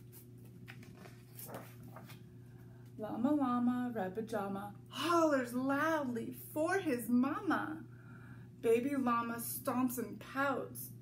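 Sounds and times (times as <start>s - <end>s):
book pages turning: 0.0s - 2.3s.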